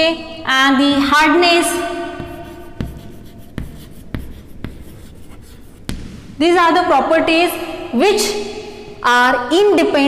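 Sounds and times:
chalk scratching on chalkboard: 2.2 - 6.0
chalk tapping on board: 2.2 - 6.3.

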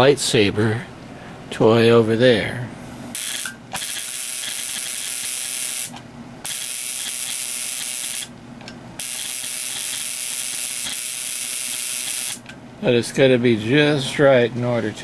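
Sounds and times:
relay buzzing with spark crackle: 3.1 - 8.4, 9.0 - 12.5.

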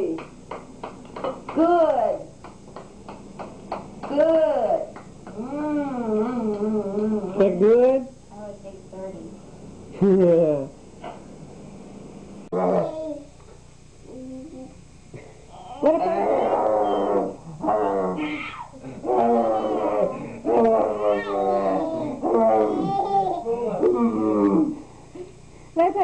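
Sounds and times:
playful growling and roaring: 16.0 - 22.9.

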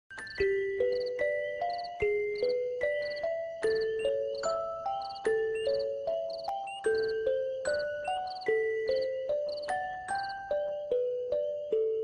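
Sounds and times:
chiming bell-like melody: 0.1 - 12.0
faint high tinkle: 0.1 - 12.0.

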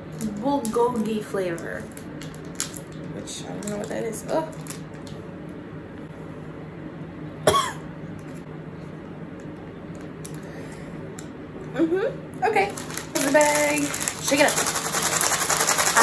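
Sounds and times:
dry noodles rattling in a bag: 12.6 - 16.0.

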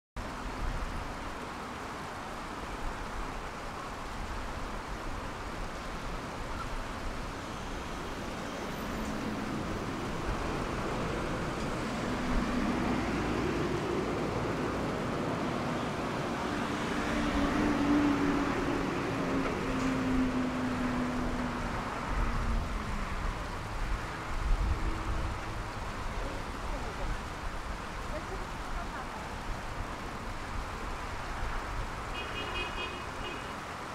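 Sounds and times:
city traffic rumble: 0.2 - 33.9
passing vehicle engine hum: 8.0 - 30.2.

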